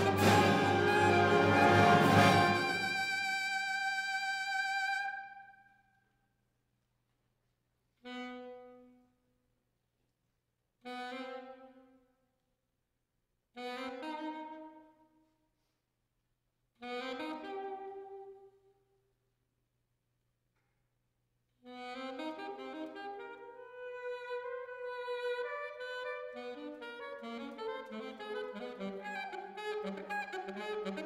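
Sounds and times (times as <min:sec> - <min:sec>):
concert wind band chords: 0:00.0 - 0:04.1.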